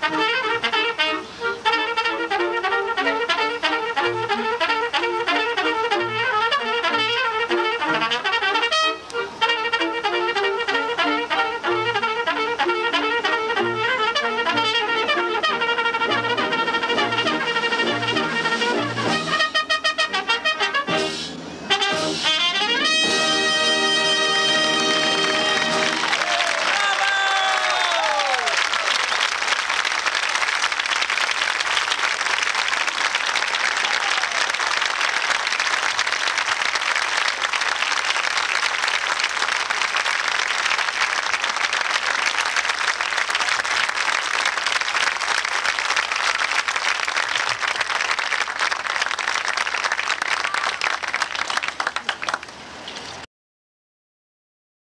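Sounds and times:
audience applauding: 0.0 - 20.0, 22.7 - 52.6
audience cheering: 13.0 - 19.5, 21.6 - 52.4.

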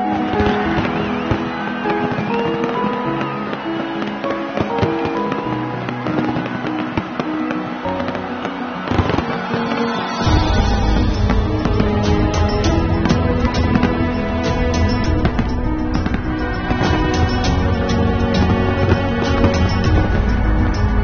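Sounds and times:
fireworks bangs and crackles: 0.0 - 21.0
music with held melodic notes: 0.0 - 21.0
deep bass line: 10.3 - 21.0.

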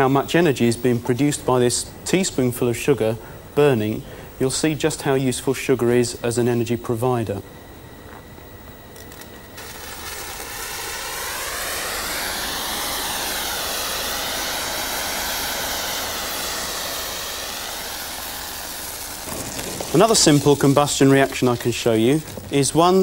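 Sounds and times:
rushing hiss of flame: 9.1 - 23.0.

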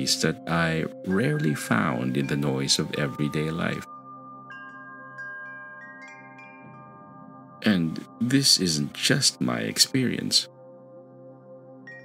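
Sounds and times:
soft background music pad: 0.0 - 12.0
wind chimes ringing: 1.0 - 12.0.

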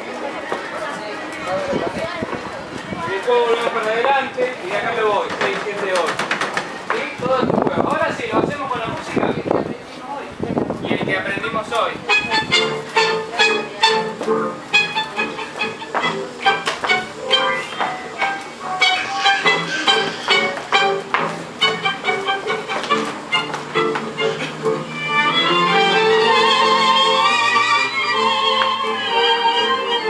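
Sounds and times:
tango music with violins: 11.4 - 30.0.

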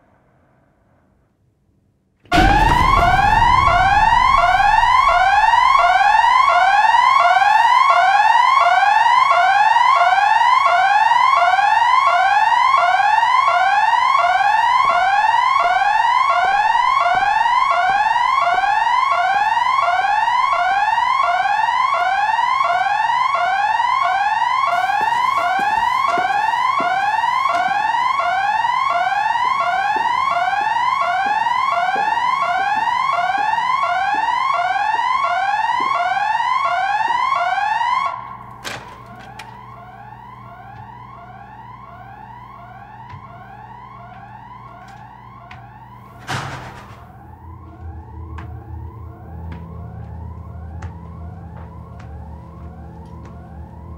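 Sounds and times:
electronic building alarm: 2.3 - 53.9.

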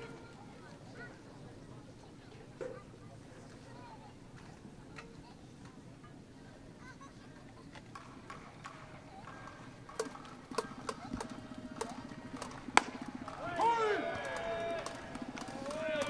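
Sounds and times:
people shouting calls: 9.2 - 16.0
baseball smacking glove: 10.0 - 13.5.

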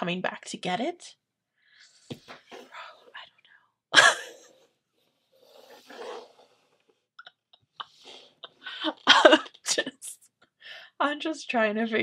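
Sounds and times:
faint breathing: 10.6 - 11.0.

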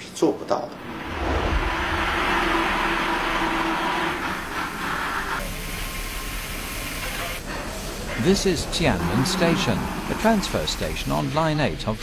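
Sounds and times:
machinery hiss and hum: 0.7 - 12.0.

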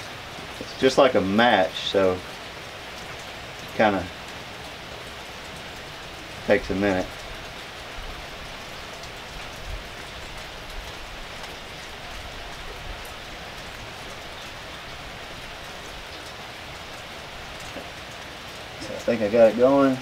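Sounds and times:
light rain falling: 0.0 - 20.0.

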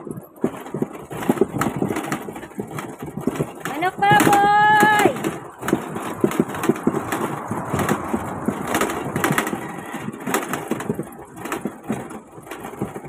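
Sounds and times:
pushcart rattling on concrete: 0.0 - 13.0.

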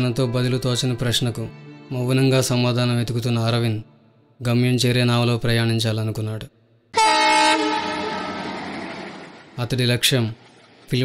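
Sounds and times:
train horn blast: 7.0 - 9.6
passing train rumble: 7.0 - 11.0.

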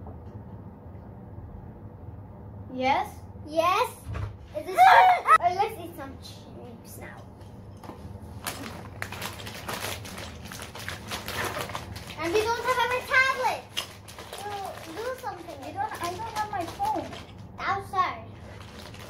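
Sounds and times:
low steady hum: 0.0 - 19.0
girls talking: 2.7 - 7.3, 12.2 - 13.7, 14.4 - 18.3
rustling and handling noise: 7.0 - 17.7, 18.3 - 19.0.

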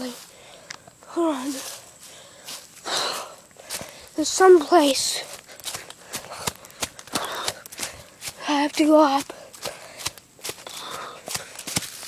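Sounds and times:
footsteps through dry leaves: 0.0 - 0.4, 1.2 - 12.0.

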